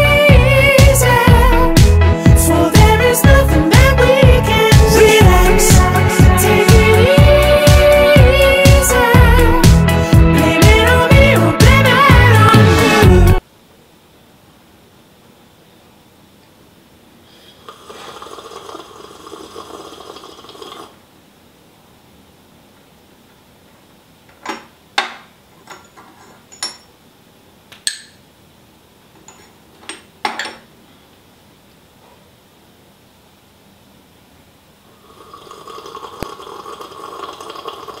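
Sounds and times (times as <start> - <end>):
person slurping tea: 17.4 - 21.0, 35.0 - 38.0.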